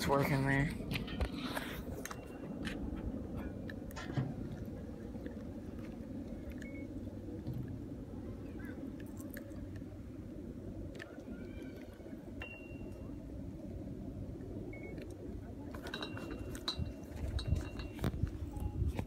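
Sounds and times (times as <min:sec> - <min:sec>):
wind rumble on microphone: 0:00.0 - 0:19.0.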